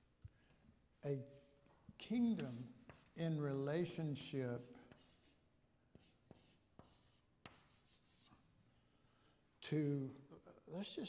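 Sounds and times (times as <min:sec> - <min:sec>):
chalk tapping and scraping: 0:02.0 - 0:03.4, 0:04.2 - 0:08.5.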